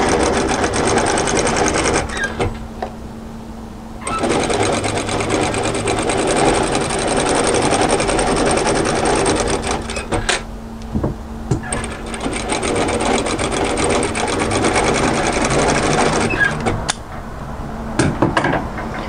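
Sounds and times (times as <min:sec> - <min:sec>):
sewing machine stitching: 0:00.0 - 0:02.5, 0:04.0 - 0:10.5, 0:11.6 - 0:16.8
steady motor hum: 0:00.0 - 0:17.1.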